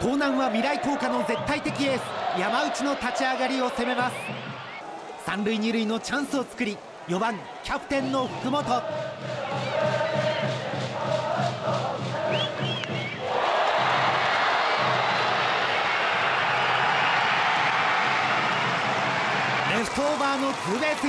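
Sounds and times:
crowd chanting: 0.0 - 5.1, 7.1 - 19.7
crowd cheering: 0.0 - 21.0.

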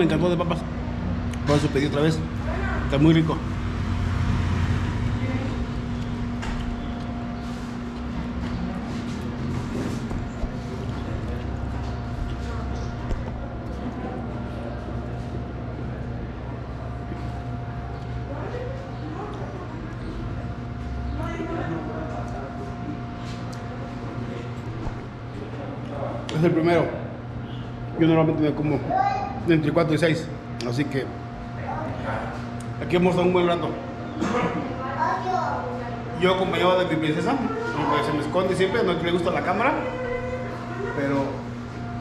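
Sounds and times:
street traffic: 0.0 - 26.4
steady low hum: 0.0 - 42.0.

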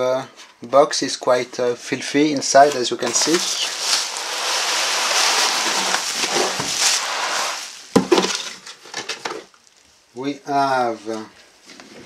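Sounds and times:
bubble wrap rustling and crinkling: 2.4 - 9.8.

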